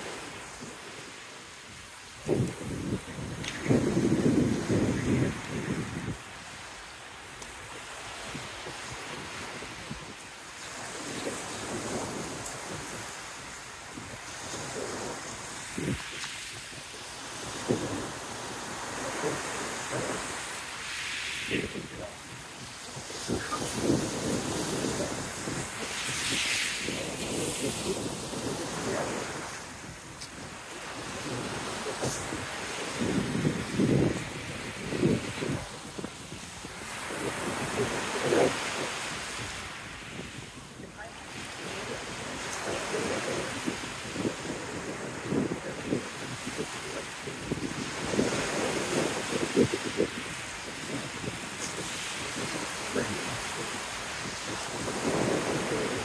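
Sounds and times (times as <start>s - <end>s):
waves breaking on pebble beach: 0.0s - 56.0s
wind buffeting microphone: 1.7s - 20.6s, 21.5s - 56.0s.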